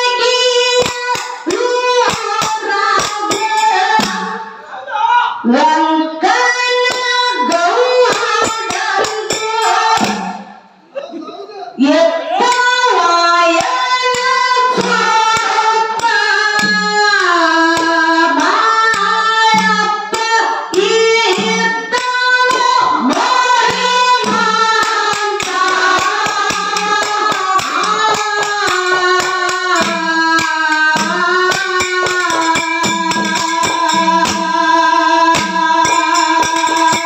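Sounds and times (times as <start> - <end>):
woman singing through microphone: 0.0 - 4.6, 5.4 - 10.6, 11.8 - 37.0
sharp percussion beat: 0.0 - 4.7, 5.4 - 37.0.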